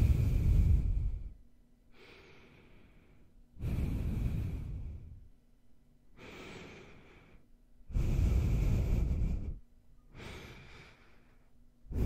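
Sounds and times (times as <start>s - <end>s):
nasal breathing into microphone: 0.0s - 1.4s, 2.0s - 5.2s, 6.2s - 12.0s.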